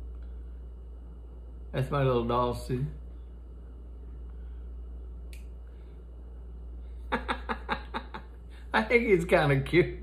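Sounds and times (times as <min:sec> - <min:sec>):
steady low hum: 0:00.0 - 0:10.0
faint click: 0:05.3 - 0:05.6.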